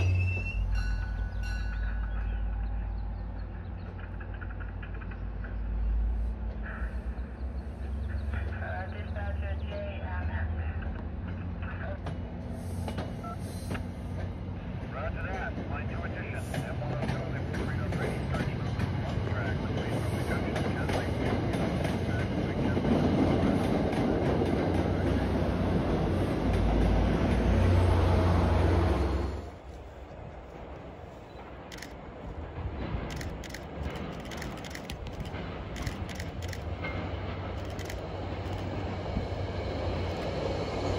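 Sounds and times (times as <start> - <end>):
train wheels rumbling on rails: 0.0 - 40.9.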